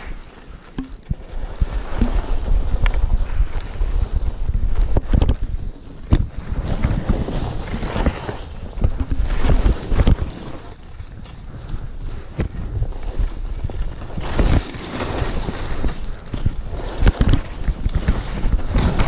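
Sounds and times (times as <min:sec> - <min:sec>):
skis knocking on bumps: 0:00.0 - 0:03.9, 0:04.6 - 0:11.2
skis scraping over snow: 0:00.0 - 0:19.0
wind buffeting microphone: 0:01.0 - 0:19.0.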